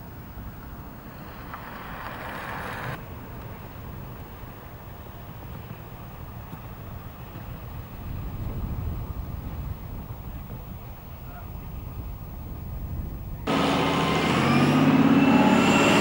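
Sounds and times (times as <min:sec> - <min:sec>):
wind rumbling on microphone: 0:00.0 - 0:13.5.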